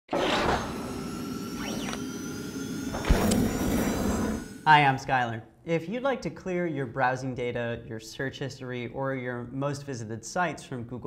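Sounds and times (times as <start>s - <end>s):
held synth tones: 0.8s - 5.0s.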